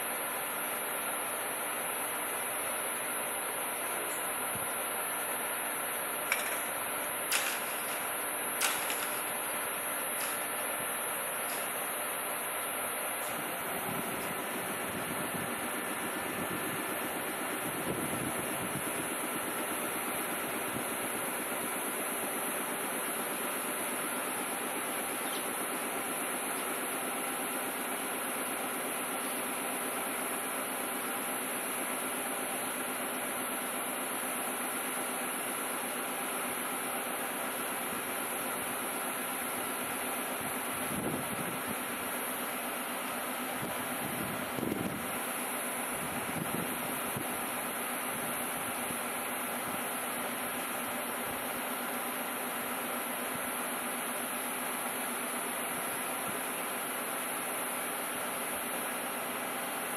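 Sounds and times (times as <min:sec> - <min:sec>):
electric train equipment humming: 0:00.0 - 0:59.9.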